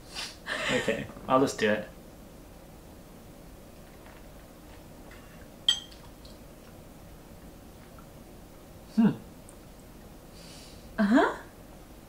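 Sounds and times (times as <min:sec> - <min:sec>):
metal spoon clinking on bowl: 0:05.2 - 0:06.1.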